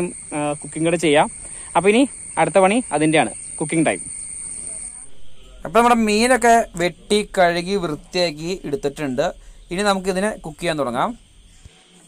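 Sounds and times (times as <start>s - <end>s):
high-pitched insect drone: 0.0s - 12.0s
man talking: 5.2s - 11.2s.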